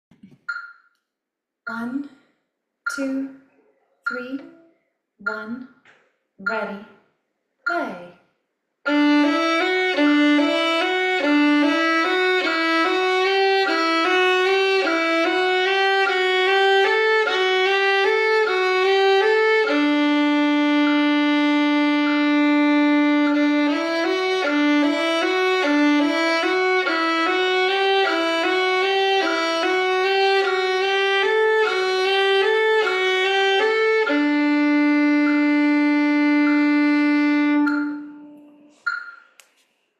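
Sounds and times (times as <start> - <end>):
violin playing exercise: 8.9 - 38.8.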